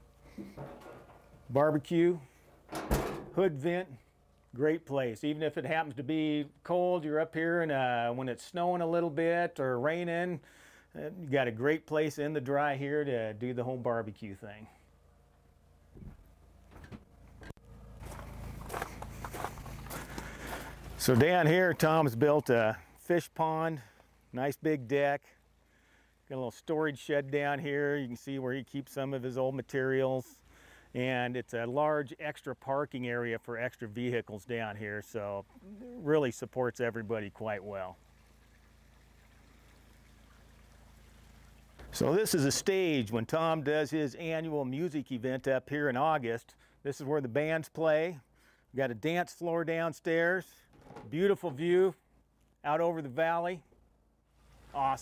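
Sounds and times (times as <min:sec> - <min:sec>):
soft hiss and hum: 0:00.0 - 0:46.9
faint footsteps: 0:15.3 - 0:21.9.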